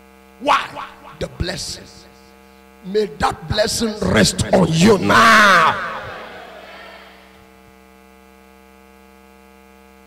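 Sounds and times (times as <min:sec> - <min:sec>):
electrical mains hum: 0:00.0 - 0:07.8
echo of shouted voice: 0:00.4 - 0:02.1, 0:02.8 - 0:07.4.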